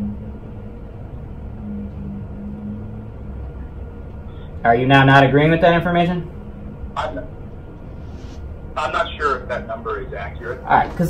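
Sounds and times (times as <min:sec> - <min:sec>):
faint hum: 0:00.0 - 0:11.0
vehicle engine rumble: 0:00.0 - 0:11.0.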